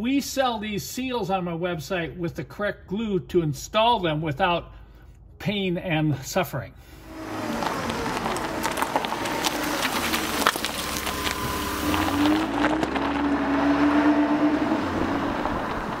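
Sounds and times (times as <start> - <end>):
vehicle engine running: 6.9 - 16.0
crackles and clicks: 7.2 - 13.4.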